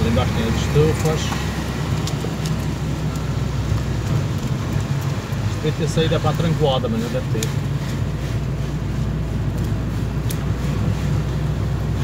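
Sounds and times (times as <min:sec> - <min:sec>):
car engine and tyre rumble: 0:00.0 - 0:12.0.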